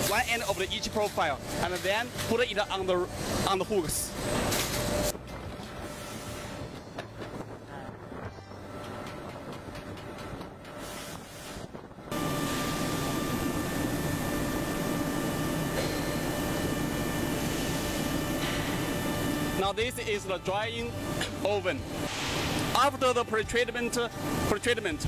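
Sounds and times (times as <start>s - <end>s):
machinery hum: 0.0s - 25.0s
steady whining tones: 0.0s - 25.0s.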